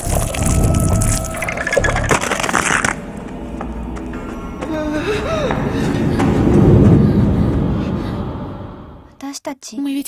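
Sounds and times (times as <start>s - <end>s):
low rumble: 0.0s - 9.2s.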